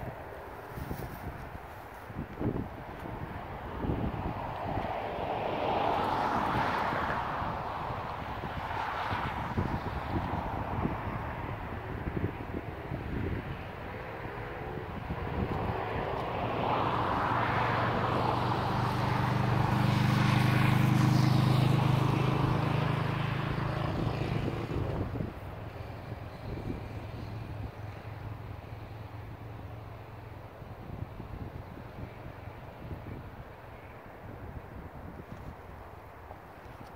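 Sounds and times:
engine drone passing by: 3.5s - 34.3s.

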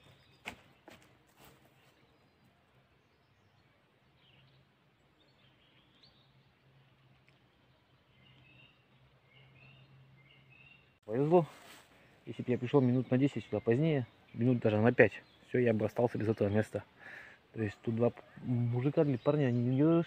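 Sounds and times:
faint bird chirps: 1.5s - 20.0s.

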